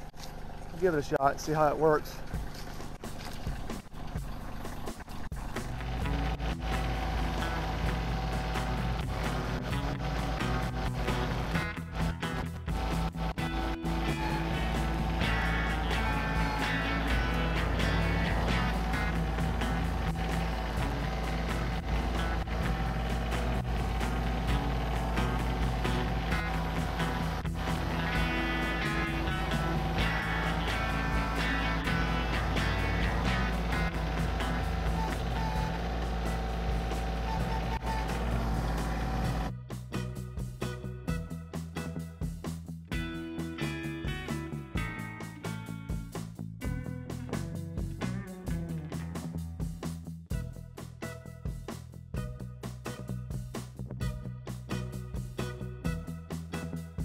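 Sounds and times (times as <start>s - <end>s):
tractor diesel engine under load: 3.8s - 39.5s
background music: 4.8s - 57.0s.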